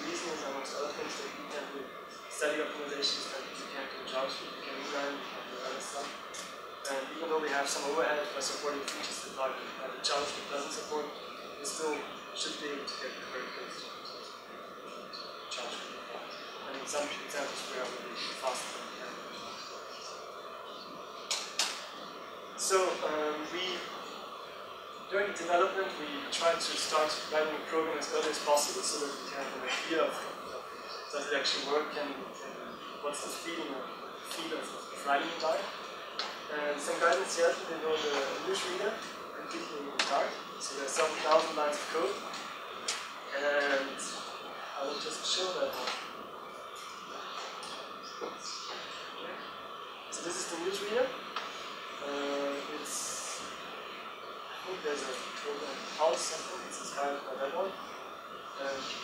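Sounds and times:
room hiss: 0:00.0 - 0:59.0.

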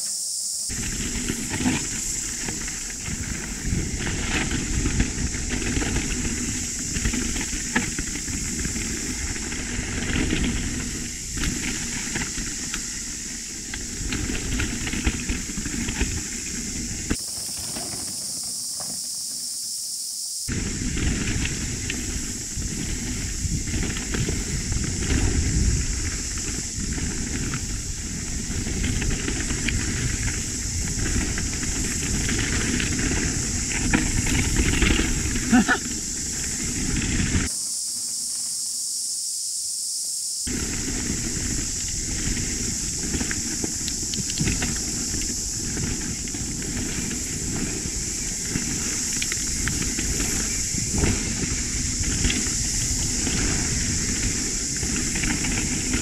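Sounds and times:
constant high hiss: 0:00.0 - 0:56.0
wind and tyre noise: 0:00.1 - 0:38.8, 0:40.0 - 0:56.0
bike clattering over rough ground: 0:00.7 - 0:19.7, 0:20.5 - 0:37.6, 0:40.5 - 0:56.0.

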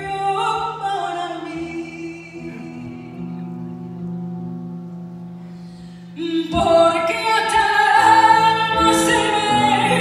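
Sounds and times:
woman singing: 0:00.0 - 0:03.6, 0:06.1 - 0:10.0.

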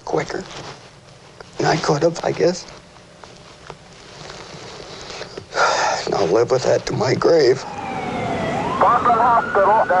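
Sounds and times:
man speaking: 0:05.9 - 0:07.7.

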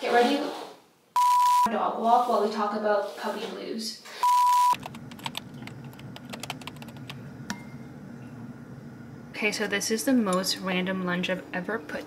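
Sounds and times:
low hum: 0:04.8 - 0:12.0.

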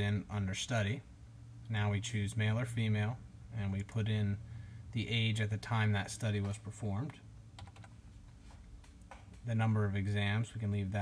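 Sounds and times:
keyboard keystrokes: 0:07.6 - 0:08.0.

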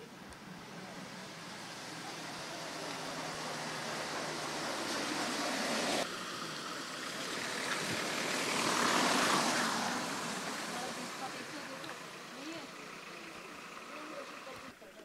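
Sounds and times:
tyre hiss on wet road: 0:00.6 - 0:14.6.

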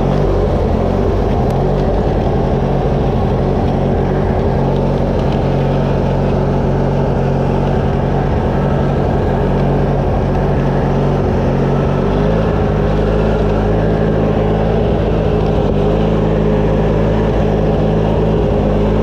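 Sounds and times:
riding lawn tractor engine: 0:00.0 - 0:19.0.

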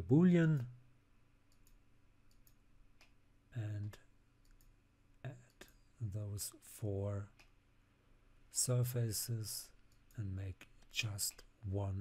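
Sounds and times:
faint mouse clicks: 0:01.5 - 0:03.2, 0:03.8 - 0:04.8, 0:07.3 - 0:07.6.

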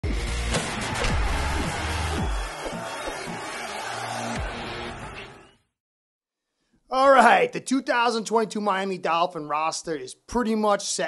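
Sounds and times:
produced music with bass hits: 0:00.0 - 0:05.4.

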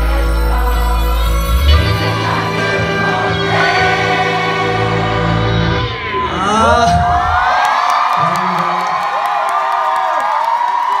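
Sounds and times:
band playing: 0:00.0 - 0:07.6
concert audience cheering: 0:03.3 - 0:11.0.

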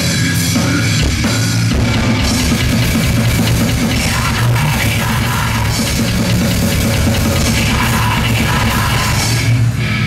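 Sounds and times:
distorted electric guitar: 0:00.0 - 0:10.0
drum kit: 0:00.0 - 0:10.0.

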